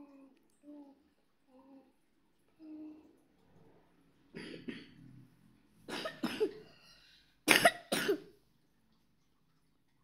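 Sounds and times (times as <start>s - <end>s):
person coughing: 5.9s - 6.7s, 7.5s - 8.3s.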